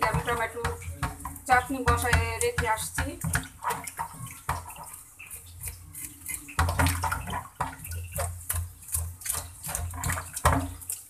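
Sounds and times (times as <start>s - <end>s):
water splashing in a bowl: 0.0s - 11.0s.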